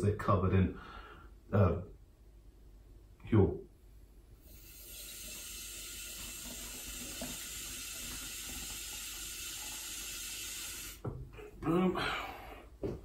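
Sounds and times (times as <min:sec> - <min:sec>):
tap water running into bottle: 0:04.5 - 0:11.2.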